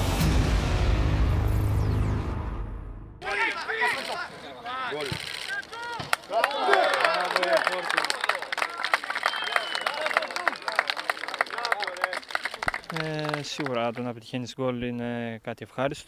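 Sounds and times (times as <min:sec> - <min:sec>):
men shouting and cheering: 0:03.2 - 0:13.8
hands clapping: 0:05.9 - 0:14.1.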